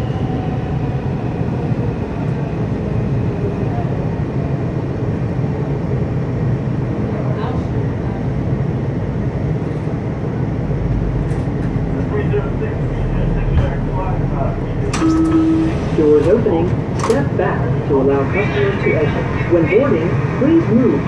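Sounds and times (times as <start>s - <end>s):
train wheels rumbling: 9.3s - 21.0s.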